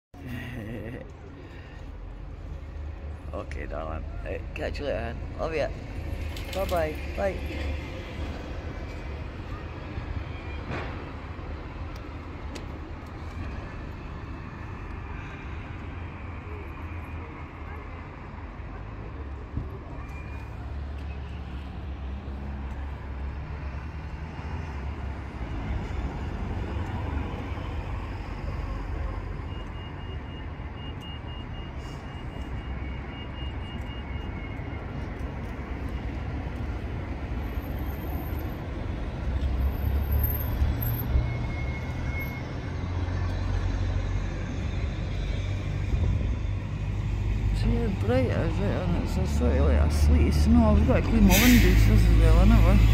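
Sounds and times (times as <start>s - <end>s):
road traffic: 0.1s - 52.9s.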